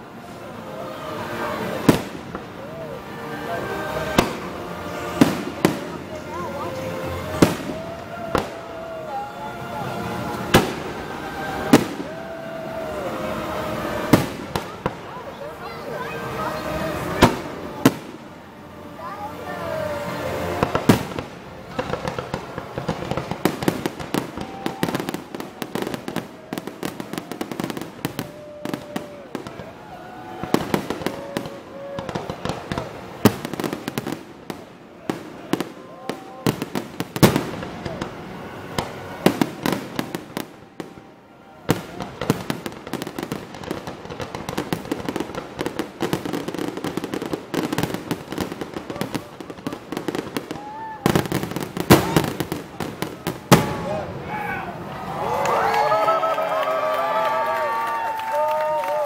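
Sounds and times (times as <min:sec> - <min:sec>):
fireworks bangs and crackles: 0:00.0 - 0:55.9.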